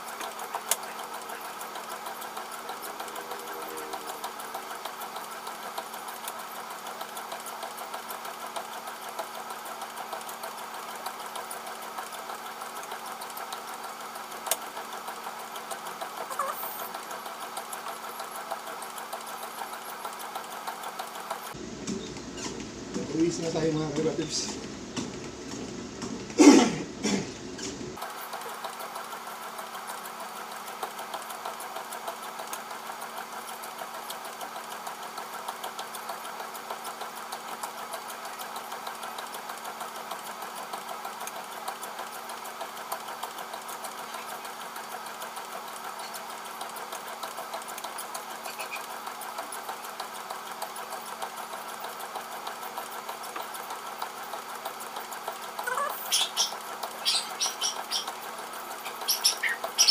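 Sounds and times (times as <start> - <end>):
treadmill motor hum and belt noise: 0.0 - 59.9.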